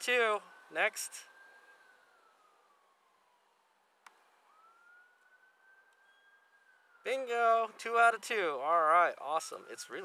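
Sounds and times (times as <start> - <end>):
distant siren wailing: 0.0 - 10.0
small click: 4.0 - 4.2.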